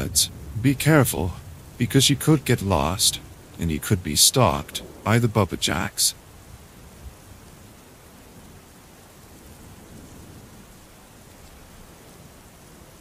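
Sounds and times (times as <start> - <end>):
soft steady rain: 0.0 - 13.0.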